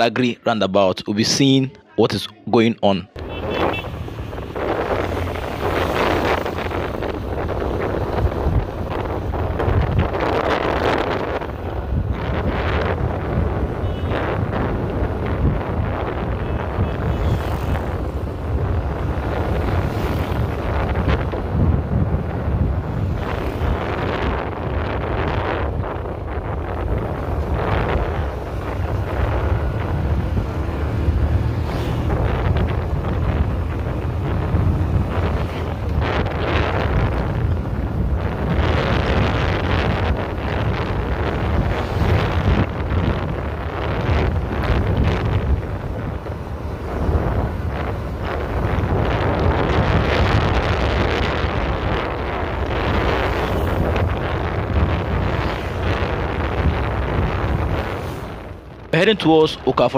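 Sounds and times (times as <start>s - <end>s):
low rumble of engine and road: 0.0s - 59.9s
wind buffeting microphone: 3.4s - 59.9s.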